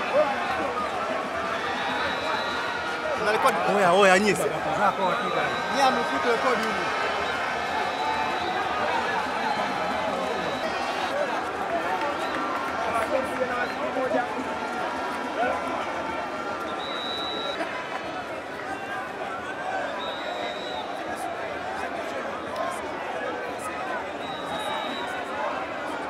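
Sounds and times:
crowd chatter: 0.0s - 26.0s.

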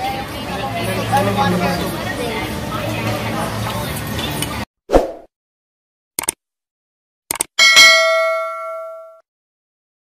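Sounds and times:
notification bell ding: 7.6s - 9.2s.

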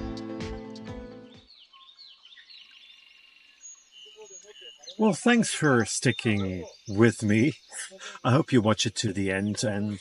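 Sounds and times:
small birds chirping: 1.4s - 10.0s.

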